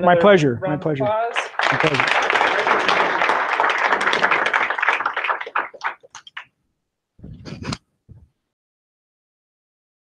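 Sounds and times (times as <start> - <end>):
audience applauding: 1.3 - 6.4.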